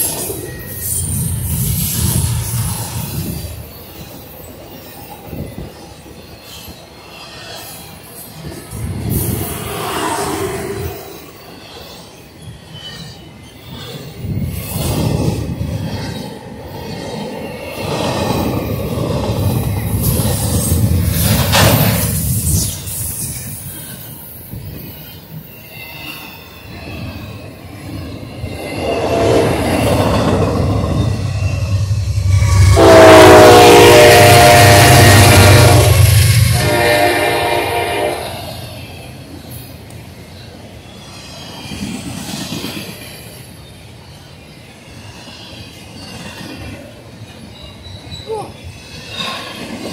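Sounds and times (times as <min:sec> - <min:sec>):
train wheels rumbling and clattering: 0:00.0 - 0:49.9
high wheel squeal: 0:19.7 - 0:37.1, 0:47.4 - 0:49.8
locomotive air horn: 0:28.9 - 0:29.8, 0:32.6 - 0:38.6.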